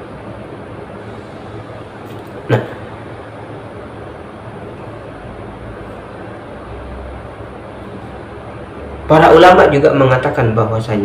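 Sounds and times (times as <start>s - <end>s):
low rumble with hiss: 0.0s - 11.0s.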